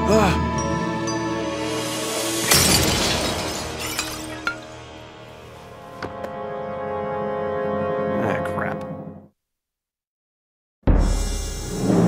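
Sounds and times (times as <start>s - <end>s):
background music with held notes: 0.0s - 2.4s, 4.7s - 9.3s
glass jar smashing on wooden floor: 2.4s - 4.8s.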